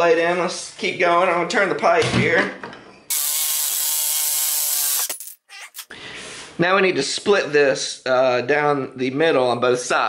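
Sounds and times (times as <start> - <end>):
jigsaw sawing through metal pipe: 3.1 - 5.9.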